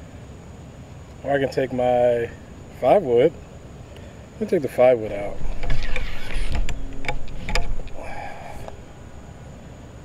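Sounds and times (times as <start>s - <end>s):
low rumble: 5.1s - 9.4s.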